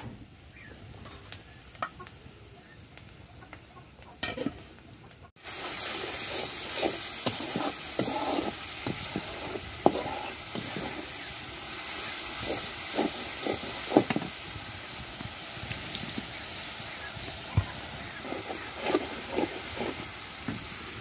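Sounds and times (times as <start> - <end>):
onions sizzling in a pan: 0.0 - 21.0
spatula scraping a pan: 5.5 - 14.4, 17.8 - 20.2.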